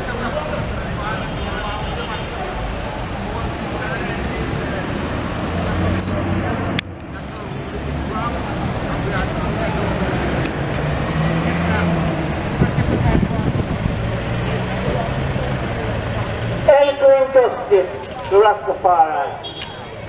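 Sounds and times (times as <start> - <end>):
faint background voices: 0.0 - 16.8
vehicle engines running: 0.0 - 20.0.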